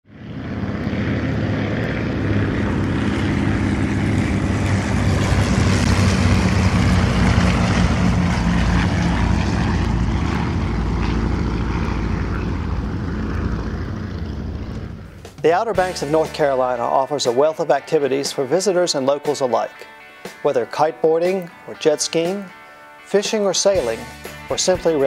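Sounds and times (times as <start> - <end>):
propeller airplane engine droning: 0.0 - 25.0.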